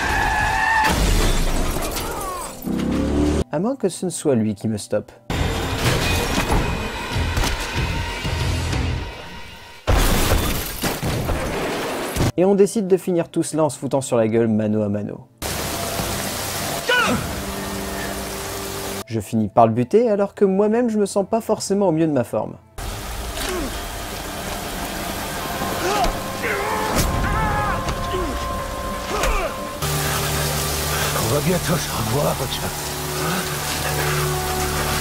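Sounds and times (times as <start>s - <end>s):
car window glass shattering: 9.9s - 11.4s
heavy rain pouring: 15.4s - 19.0s, 22.8s - 35.0s
falling vocal cry: 25.7s - 29.8s.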